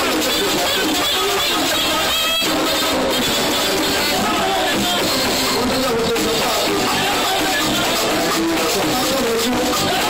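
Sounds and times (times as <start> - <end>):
electric guitar: 0.0 - 10.0
live band playing: 0.0 - 10.0
percussion: 0.0 - 10.0
guira scraping: 0.4 - 10.0.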